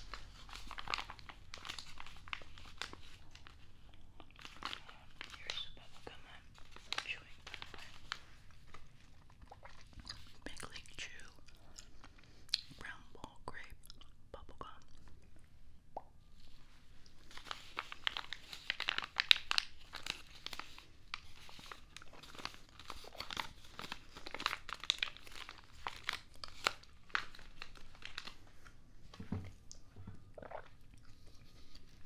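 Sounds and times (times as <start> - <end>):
packaging crinkling and tearing: 0.0 - 10.5, 17.1 - 28.8.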